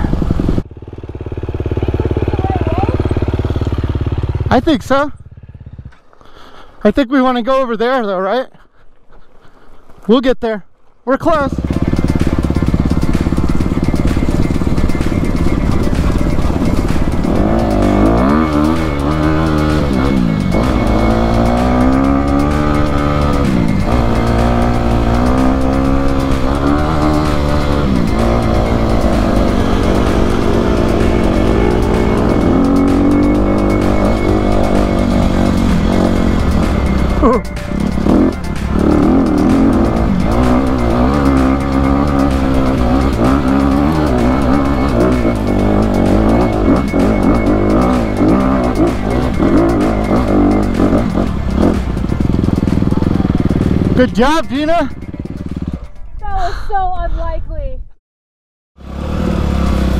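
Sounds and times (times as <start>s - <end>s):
dirt bike engine revving: 0.0s - 6.5s, 11.2s - 56.0s, 58.8s - 59.9s.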